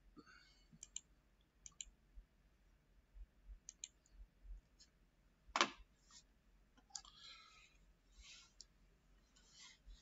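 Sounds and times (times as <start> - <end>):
computer mouse clicks: 0.8 - 2.0, 3.6 - 4.1.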